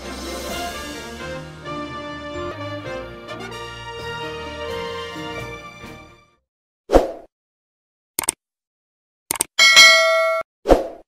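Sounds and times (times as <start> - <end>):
notification bell ding: 9.6 - 10.4.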